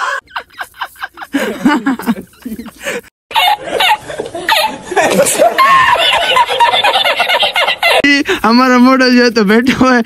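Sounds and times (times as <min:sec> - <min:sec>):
man laughing hard: 0:00.0 - 0:08.2.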